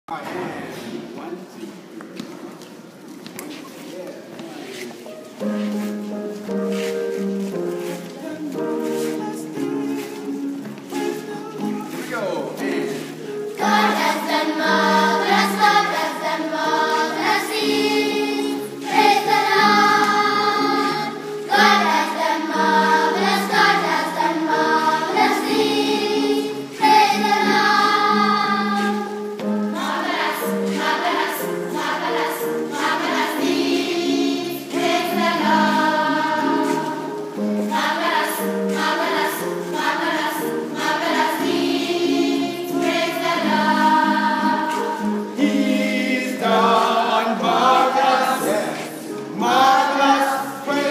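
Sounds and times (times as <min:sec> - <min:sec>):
children's choir singing: 0:05.3 - 0:50.9.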